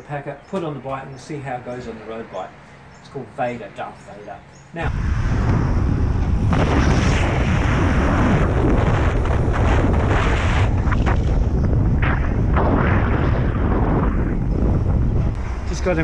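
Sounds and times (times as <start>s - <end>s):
wind buffeting microphone: 4.9s - 16.0s.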